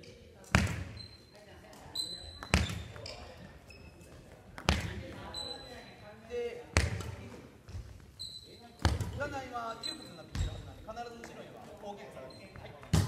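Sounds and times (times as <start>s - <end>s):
shoes squeaking on court floor: 0.0s - 13.0s.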